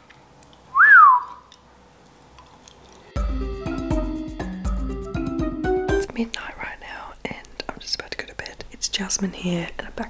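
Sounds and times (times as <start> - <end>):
whistled note falling in pitch: 0.7 - 1.4
person chewing pasta: 1.4 - 3.2.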